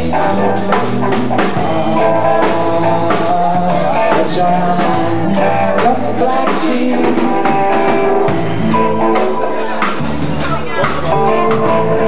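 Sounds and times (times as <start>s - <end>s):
live band playing: 0.0s - 12.0s.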